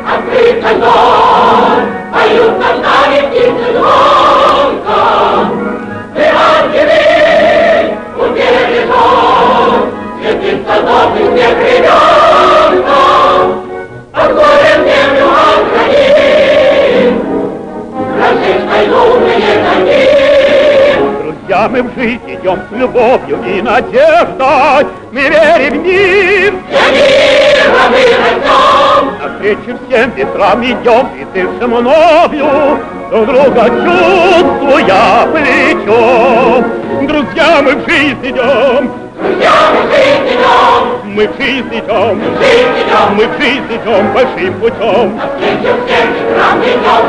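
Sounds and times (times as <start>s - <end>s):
choir singing with accompaniment: 0.0s - 21.6s, 22.4s - 47.0s.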